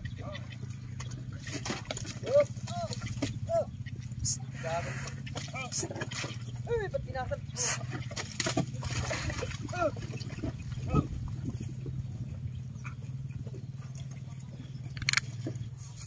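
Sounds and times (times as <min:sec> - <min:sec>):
men shouting calls: 0:00.0 - 0:00.8, 0:02.2 - 0:06.0, 0:09.3 - 0:11.4
steady low hum: 0:00.0 - 0:16.0.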